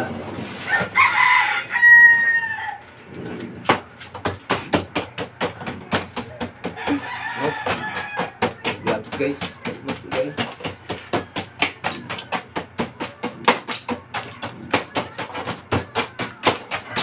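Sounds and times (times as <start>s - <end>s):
rooster crowing: 0.6s - 2.9s, 6.8s - 8.5s
knife chopping ice: 3.6s - 17.0s.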